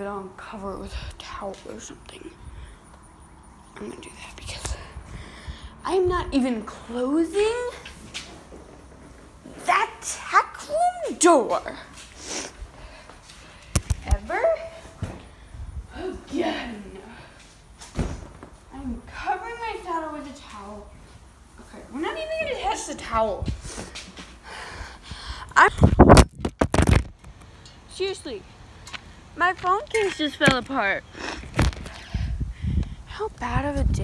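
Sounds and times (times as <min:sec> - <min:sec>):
short breath: 0:24.4 - 0:25.5.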